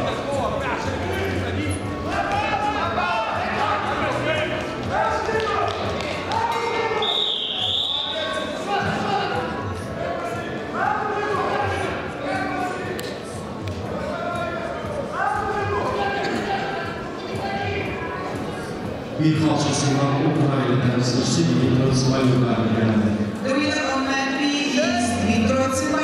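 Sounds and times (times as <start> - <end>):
men shouting in echoing hall: 0.0 - 13.0, 13.9 - 18.6
high whistle: 7.0 - 8.5.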